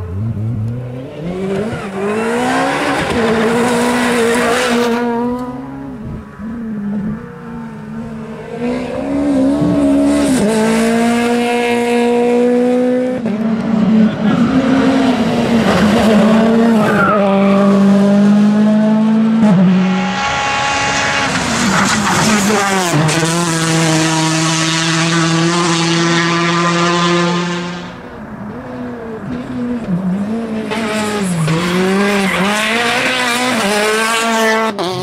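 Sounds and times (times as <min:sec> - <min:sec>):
rally car engines passing: 0:00.0 - 0:35.0.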